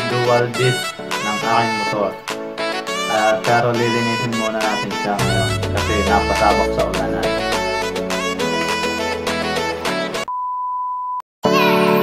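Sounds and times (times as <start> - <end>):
background music: 0.0 - 10.3
keyboard music: 0.0 - 10.3.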